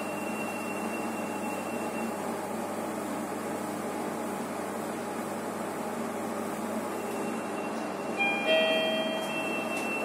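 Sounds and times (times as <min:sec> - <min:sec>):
lift car hum: 0:06.6 - 0:10.0
two-note lift arrival chime: 0:08.2 - 0:10.0.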